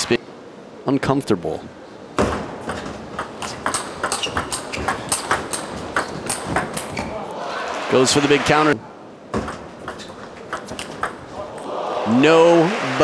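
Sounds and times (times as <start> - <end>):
crowd noise in large hall: 1.7 - 13.0.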